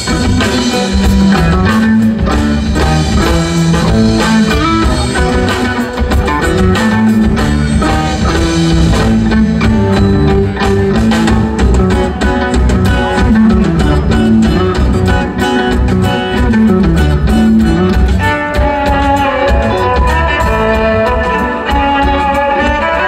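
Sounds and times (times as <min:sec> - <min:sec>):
drum hits: 0:00.0 - 0:22.2
bass line: 0:00.0 - 0:23.0
high held melody: 0:00.0 - 0:23.0
plucked guitar and lute: 0:00.0 - 0:23.0.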